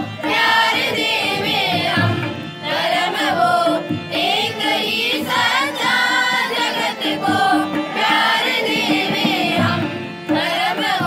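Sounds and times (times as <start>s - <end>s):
girls singing into a microphone: 0.0s - 11.0s
hand drum: 0.0s - 11.0s.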